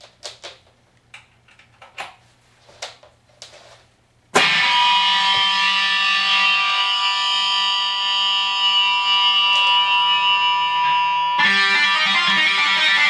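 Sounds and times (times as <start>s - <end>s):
distorted electric guitar chord: 4.4s - 13.0s.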